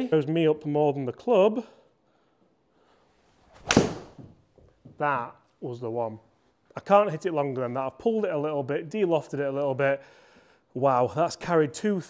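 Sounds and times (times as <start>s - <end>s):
golf swing rush: 3.2s - 4.4s
golf club striking ball: 3.6s - 4.3s.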